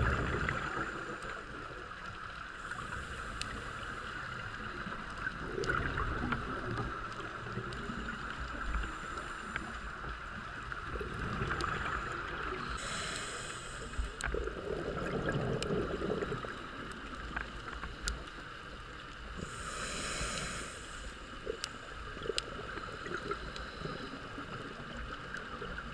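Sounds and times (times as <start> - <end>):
underwater hiss: 0.0 - 1.7, 2.4 - 6.1, 6.8 - 18.5, 19.2 - 25.2
faint clicks: 0.6 - 19.4, 20.4 - 25.8
rush of higher hiss: 12.7 - 14.2, 19.4 - 21.4.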